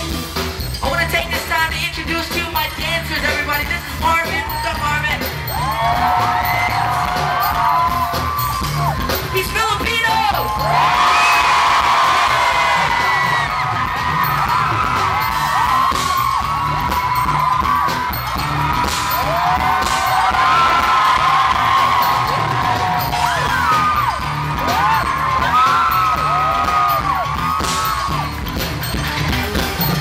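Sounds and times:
live pop concert music: 0.0 - 30.0
fans screaming and whooping: 4.0 - 30.0.

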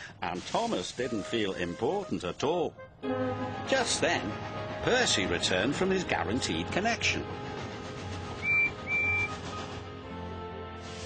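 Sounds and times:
background music: 0.0 - 11.0
steam whistle toots: 8.2 - 9.9.

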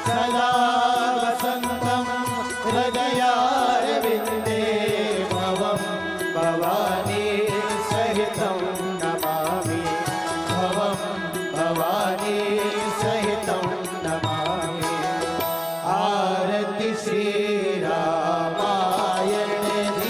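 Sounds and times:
person chanting a devotional melody: 0.0 - 20.0.

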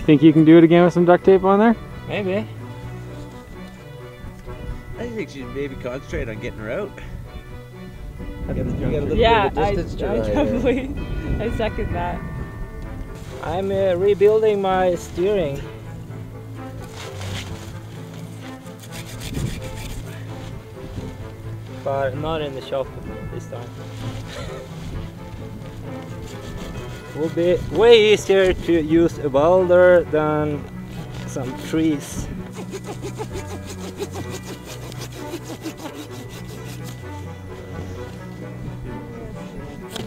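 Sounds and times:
background music: 0.0 - 40.0
hand saw cutting wood: 16.8 - 20.6, 25.9 - 28.3, 30.9 - 37.3.

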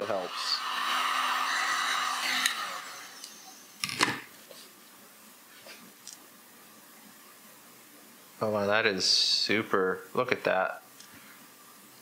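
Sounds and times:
heat gun blowing: 0.0 - 3.7.

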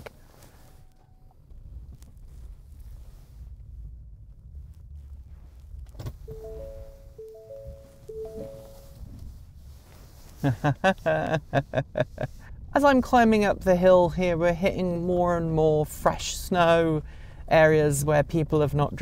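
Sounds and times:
low rumble inside car cab: 0.1 - 19.0
short electronic beep: 6.3 - 9.0
three-note electronic chime: 6.3 - 9.1.

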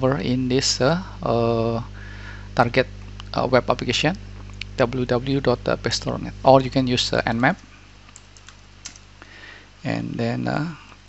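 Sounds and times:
computer keyboard keystrokes: 8.1 - 9.0.

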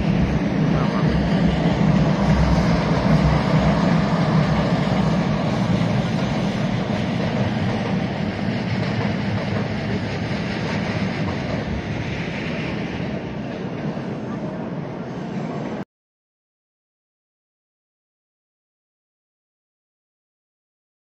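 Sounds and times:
electric train rumbling on rails: 0.0 - 15.8.

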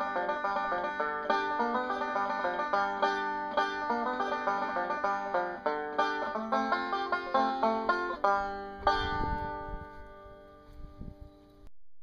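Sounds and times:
banjo music: 0.0 - 11.0.

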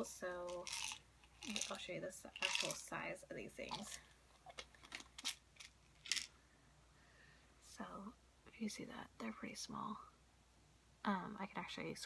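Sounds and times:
pill container clicking and rattling: 0.5 - 2.9, 3.6 - 6.3.

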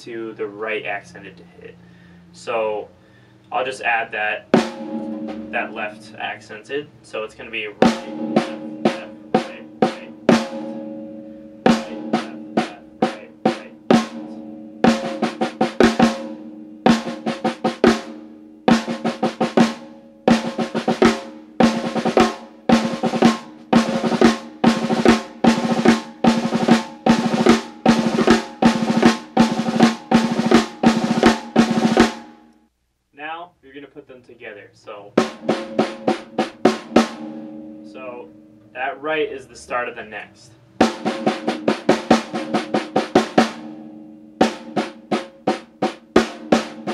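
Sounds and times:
snare drum roll with sticks: 7.8 - 10.8, 11.7 - 14.3, 18.7 - 32.2, 40.8 - 43.6, 44.4 - 46.9.

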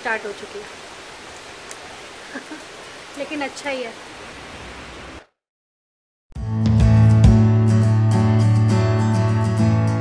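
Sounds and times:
steady rain: 0.0 - 5.3.

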